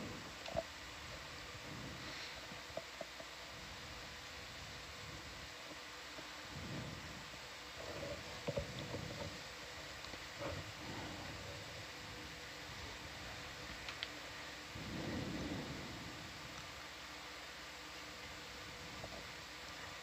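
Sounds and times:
faint electronic hum: 0.0s - 20.0s
soft low rumbles: 0.0s - 20.0s
steady hiss: 0.0s - 20.0s
small clicks: 13.8s - 14.2s.

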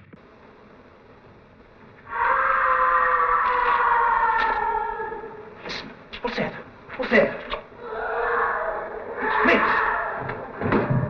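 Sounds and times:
distant echoing scream: 2.0s - 6.1s, 7.6s - 11.0s.

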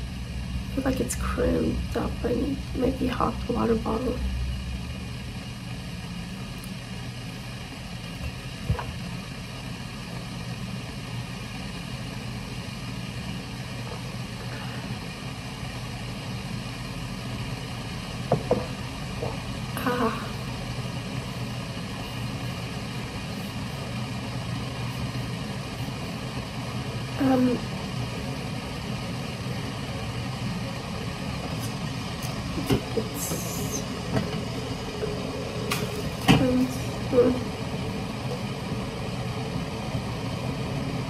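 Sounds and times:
low mechanical hum: 0.0s - 41.0s.

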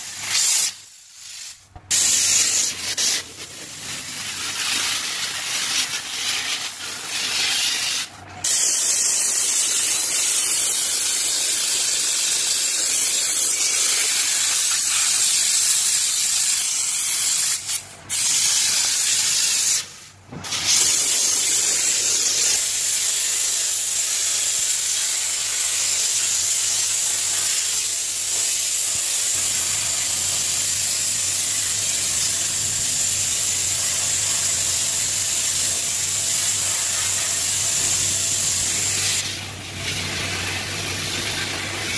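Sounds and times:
steam cleaner hissing: 0.0s - 41.9s.

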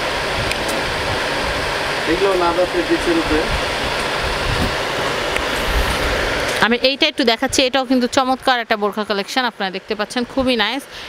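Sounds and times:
steady rushing noise: 0.0s - 10.8s.

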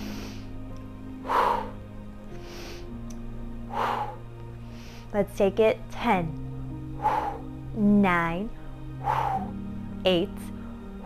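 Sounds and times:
woman breathing deeply: 0.0s - 5.2s, 6.7s - 7.7s, 8.5s - 11.0s
soft music of sustained chords: 0.0s - 11.0s.

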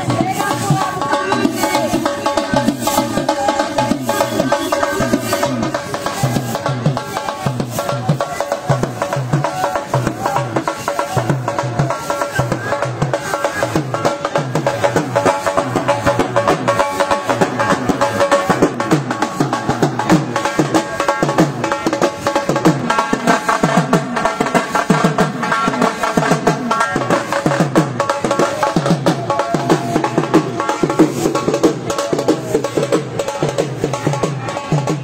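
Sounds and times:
dhol drum beating: 0.0s - 35.0s.

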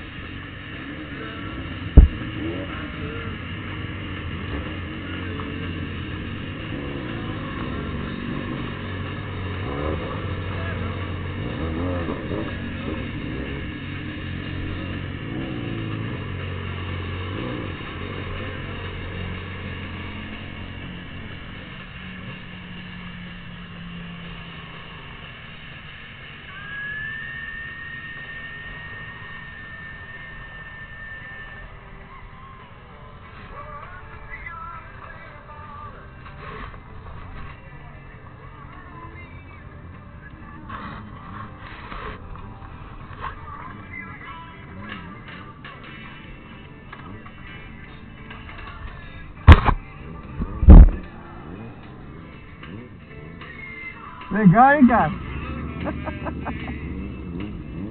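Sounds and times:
motorcycle engine idling: 0.0s - 57.9s
voices: 0.0s - 57.9s.

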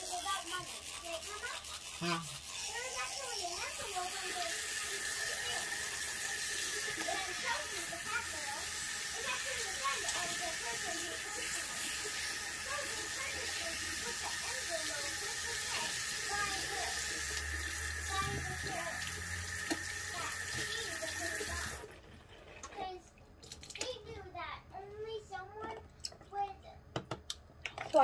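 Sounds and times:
sink tap running: 0.0s - 21.9s.

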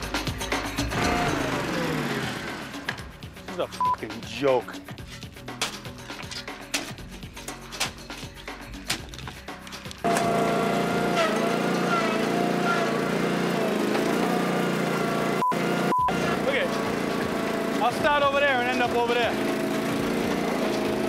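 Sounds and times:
tractor engine running: 0.0s - 4.1s, 5.4s - 21.0s
shovel scraping against stones: 4.9s - 10.3s.

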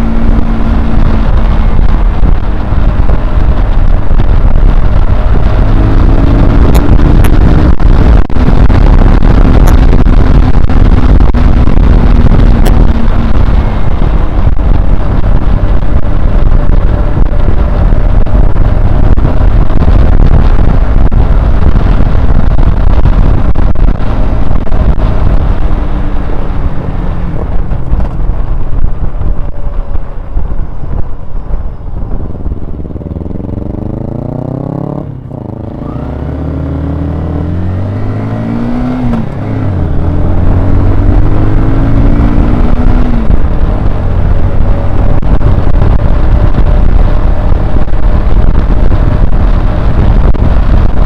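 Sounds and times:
motorcycle engine: 0.0s - 51.0s
rushing wind: 0.0s - 51.0s.

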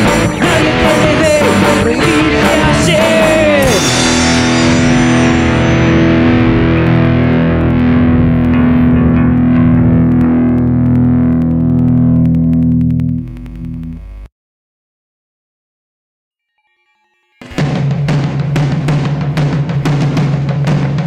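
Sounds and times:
distorted electric guitar chord ringing: 0.0s - 14.3s, 16.6s - 18.4s.

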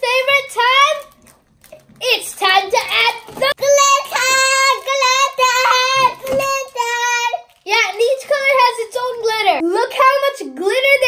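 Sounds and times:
child singing wordless tune: 3.5s - 11.0s.

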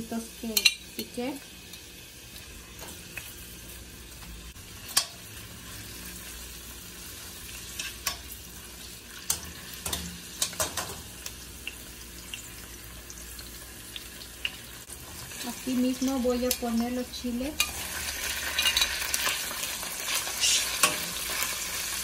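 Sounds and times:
onions sizzling in oil: 0.0s - 22.0s
metal tongs scraping a pan: 17.5s - 21.5s.

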